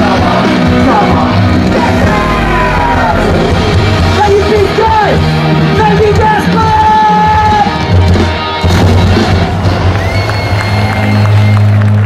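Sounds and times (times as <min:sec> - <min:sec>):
crowd cheering: 0:00.0 - 0:05.6, 0:06.6 - 0:12.0
heavy metal band playing live: 0:00.0 - 0:10.2.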